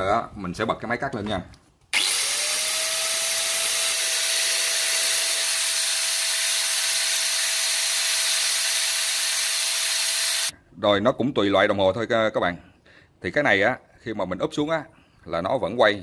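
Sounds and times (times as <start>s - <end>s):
electric blower hissing: 2.0s - 10.5s.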